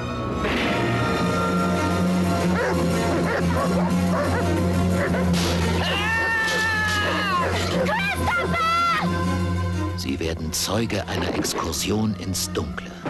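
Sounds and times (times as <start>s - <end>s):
dark film score drone: 0.0s - 8.2s
long wailing cry: 5.8s - 9.2s.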